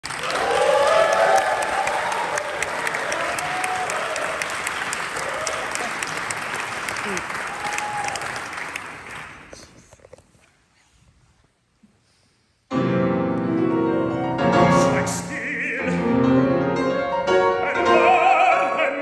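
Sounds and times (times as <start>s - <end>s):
audience applauding: 0.0s - 9.9s.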